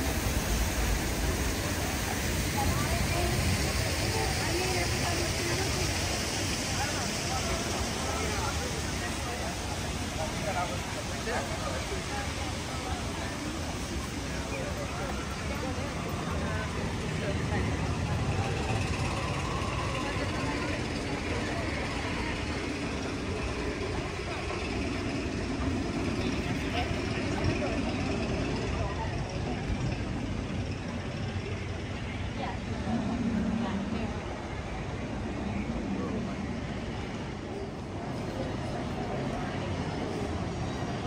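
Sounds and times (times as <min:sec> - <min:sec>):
indistinct voices: 0:00.0 - 0:41.0
steady low rumble: 0:00.0 - 0:41.0.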